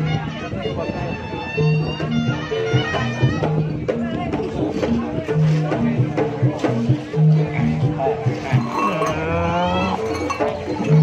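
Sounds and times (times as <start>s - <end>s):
gamelan music: 4.8s - 11.0s
long gliding vocal cry: 8.4s - 10.4s.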